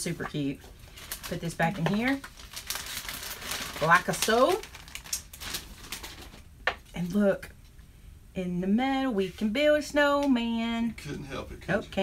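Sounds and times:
papers rustling: 0:00.2 - 0:06.5
plastic bag being handled: 0:00.6 - 0:06.5.

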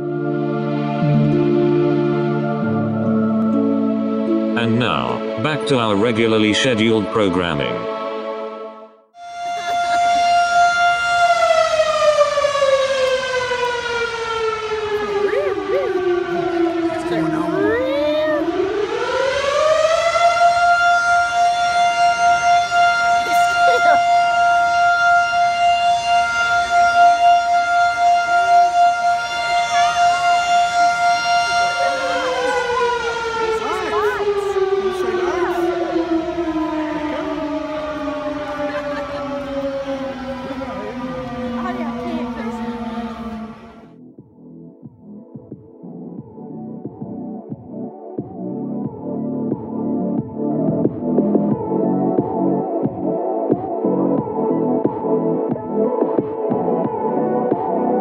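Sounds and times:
fire truck siren: 0:00.0 - 0:44.1, 0:46.0 - 0:58.0
voices: 0:14.9 - 0:18.6, 0:23.3 - 0:24.2, 0:29.5 - 0:43.4.

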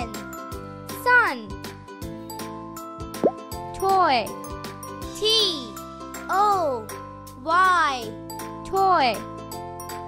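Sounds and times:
children's background music: 0:00.0 - 0:10.0.

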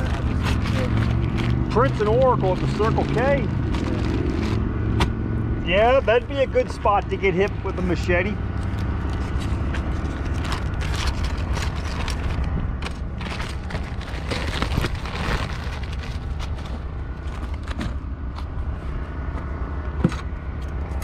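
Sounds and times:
plastic bags rustling: 0:00.0 - 0:04.6, 0:08.6 - 0:17.8
steady low rumble: 0:00.0 - 0:21.0
packed items knocking: 0:12.8 - 0:16.6.

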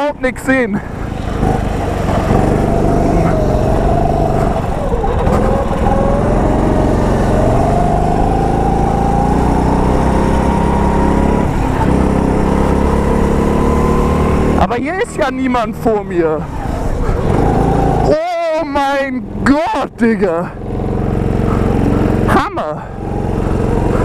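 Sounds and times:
go-kart engine running hard: 0:00.0 - 0:24.0.

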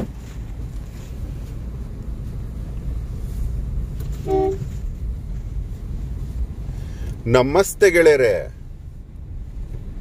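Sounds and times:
car cabin rumble: 0:00.0 - 0:10.0
vehicle horn toot: 0:04.1 - 0:04.8.

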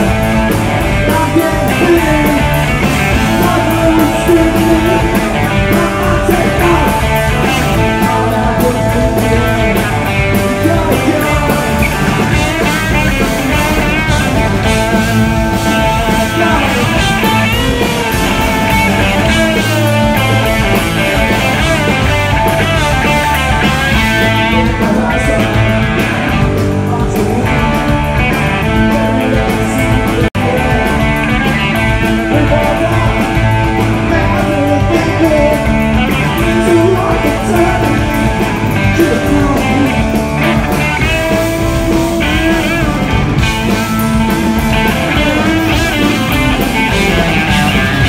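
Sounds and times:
drum kit: 0:00.0 - 0:48.0
electric bass: 0:00.0 - 0:48.0
electric guitar: 0:00.0 - 0:48.0
person singing: 0:00.0 - 0:48.0.

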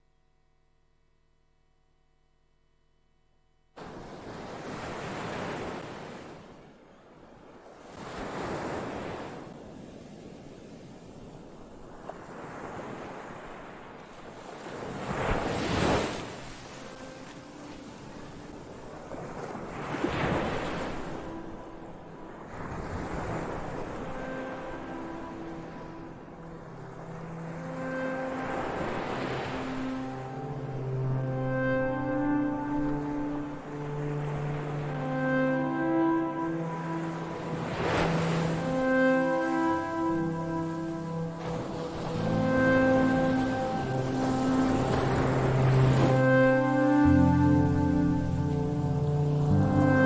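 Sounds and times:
ocean waves washing onto shore: 0:03.8 - 0:50.0
sustained synthesizer notes: 0:15.1 - 0:50.0.

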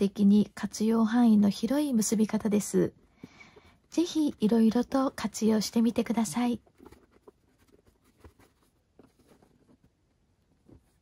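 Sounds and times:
cotton rope rustling: 0:03.9 - 0:11.0.

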